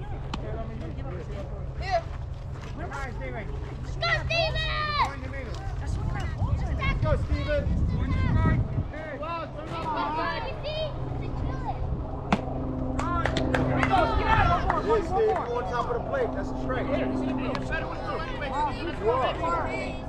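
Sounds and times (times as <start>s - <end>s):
low steady hum: 0.0s - 20.0s
voices calling out and chattering: 0.0s - 20.0s
sharp smack: 12.3s - 12.5s.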